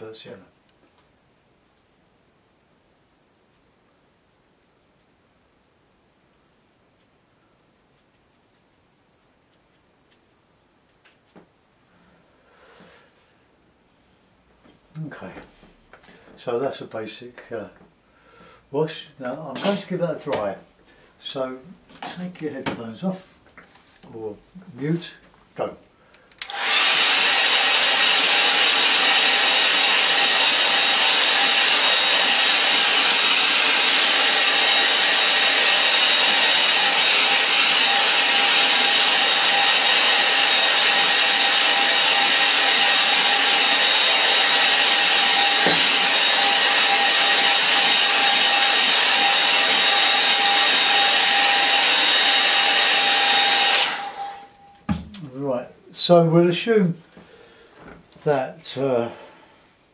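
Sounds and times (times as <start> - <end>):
hair dryer blowing: 19.6 - 20.6, 26.4 - 55.1.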